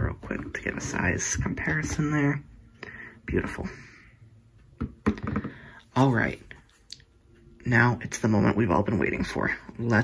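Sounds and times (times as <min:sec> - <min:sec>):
phones knocking on wooden table: 0:04.8 - 0:05.7.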